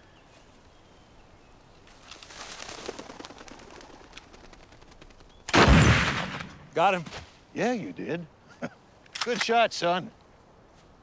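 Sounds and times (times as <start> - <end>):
dove wings flapping: 2.0 - 5.4.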